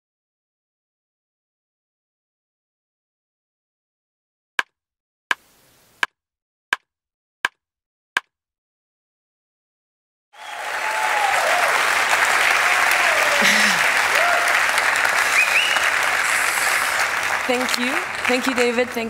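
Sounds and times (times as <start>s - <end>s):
audience applause: 10.4s - 19.0s
voices calling out: 10.4s - 19.0s.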